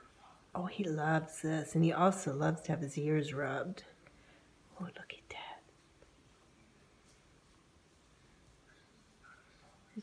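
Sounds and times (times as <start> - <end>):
woman whispering: 4.7 - 5.9.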